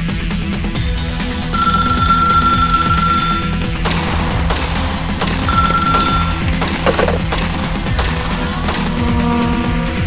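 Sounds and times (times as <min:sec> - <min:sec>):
background music: 0:00.0 - 0:10.0
telephone ringing: 0:01.5 - 0:03.8, 0:05.4 - 0:07.3.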